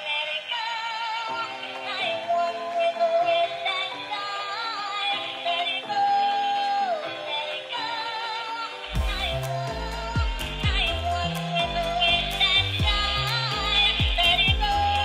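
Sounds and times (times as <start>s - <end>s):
synthesized toy song with sung voice: 0.0s - 8.9s.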